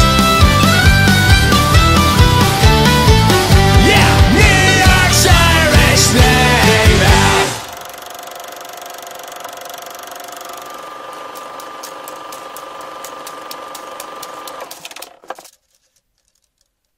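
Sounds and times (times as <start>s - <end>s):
film projector whirring: 0.0s - 15.6s
crackling clicks: 7.7s - 16.9s.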